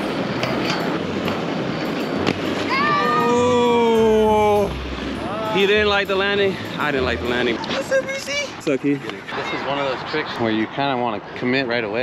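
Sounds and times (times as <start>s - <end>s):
person shouting: 2.7s - 5.6s.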